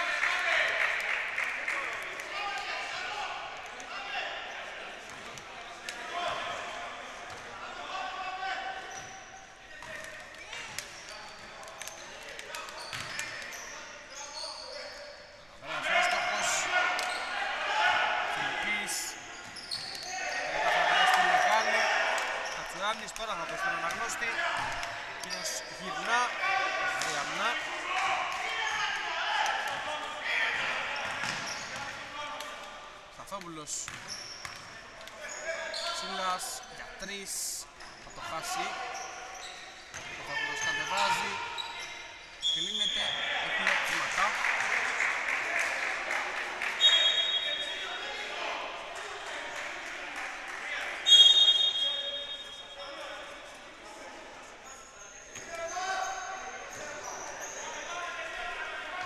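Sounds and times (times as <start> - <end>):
players' voices echoing: 0.0 - 59.0
shoe squeaks: 10.4 - 15.4, 18.6 - 20.4, 25.2 - 26.1, 30.9 - 31.8, 33.8 - 34.6, 35.2 - 37.2, 37.8 - 43.3, 46.8 - 47.8, 51.1 - 52.8, 54.6 - 57.9.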